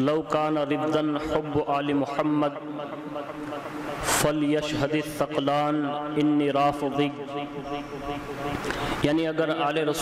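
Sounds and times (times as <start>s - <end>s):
man drawing breath: 8.6s - 9.0s.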